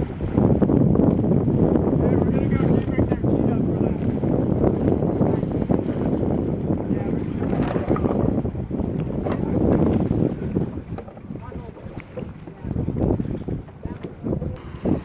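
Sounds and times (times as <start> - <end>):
boat sounds: 0.0 - 15.0
water sounds: 0.0 - 15.0
wind rumbling on microphone: 0.0 - 15.0.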